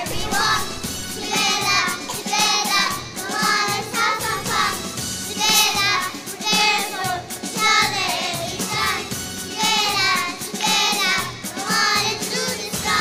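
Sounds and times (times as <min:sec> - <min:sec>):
children singing into microphones: 0:00.0 - 0:13.0
recorded backing music: 0:00.0 - 0:13.0.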